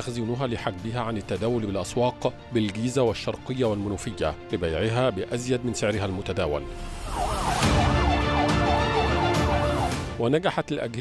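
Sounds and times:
music: 0:00.0 - 0:11.0
police siren yelping: 0:06.8 - 0:10.2.

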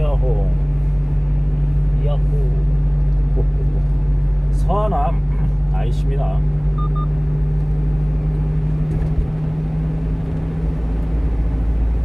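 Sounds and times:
truck engine and tyres droning: 0:00.0 - 0:12.0.

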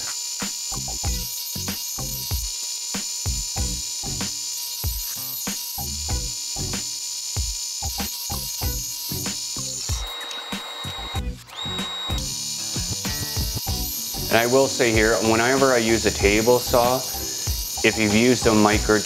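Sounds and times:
background music with beat: 0:02.3 - 0:19.0.

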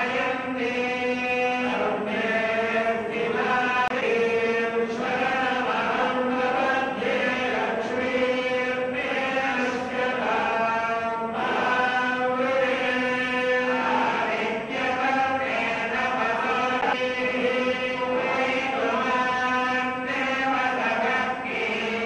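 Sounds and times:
priests chanting in unison: 0:00.0 - 0:22.0.

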